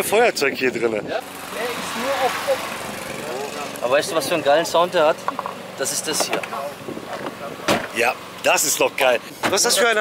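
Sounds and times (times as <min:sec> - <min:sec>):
car engine idling: 0:01.2 - 0:10.0.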